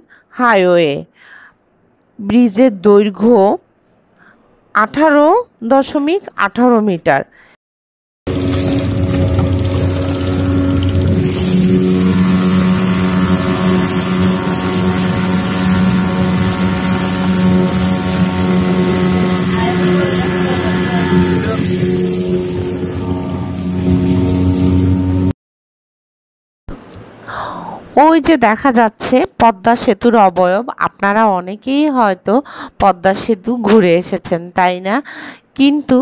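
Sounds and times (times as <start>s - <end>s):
speedboat engine running: 8.3s - 25.3s
water rushing: 8.3s - 25.3s
wind: 8.3s - 25.3s, 26.7s - 32.0s.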